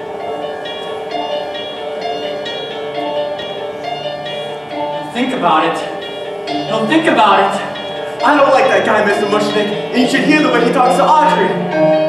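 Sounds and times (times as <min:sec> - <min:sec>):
pit band playing slow chords: 0:00.0 - 0:12.0.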